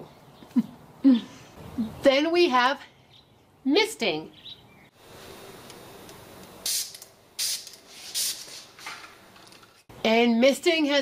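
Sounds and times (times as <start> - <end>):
spray bottle misting: 6.6 - 8.8.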